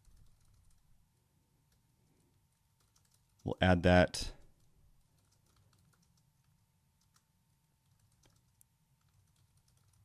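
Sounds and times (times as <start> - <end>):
computer keyboard keystrokes: 0.0 - 0.8, 2.8 - 3.4, 4.6 - 10.0.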